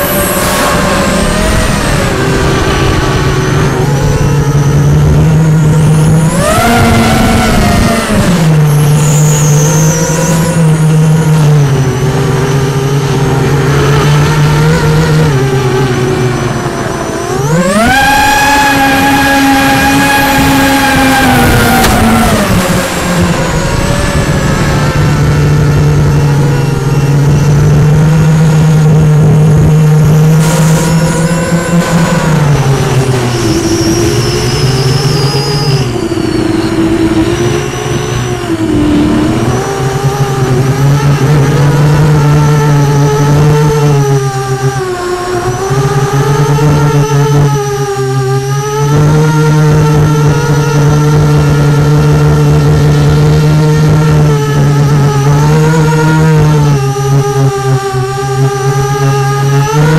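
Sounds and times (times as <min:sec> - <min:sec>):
model aircraft motor and propeller: 0:00.0 - 0:59.9.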